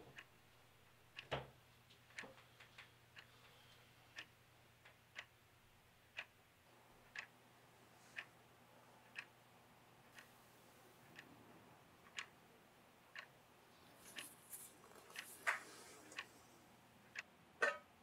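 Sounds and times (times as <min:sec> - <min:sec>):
clock ticking: 0:00.0 - 0:01.4, 0:03.0 - 0:03.3, 0:04.1 - 0:07.4, 0:08.1 - 0:08.3, 0:09.0 - 0:10.4, 0:11.0 - 0:11.4, 0:12.0 - 0:16.3, 0:17.0 - 0:18.0.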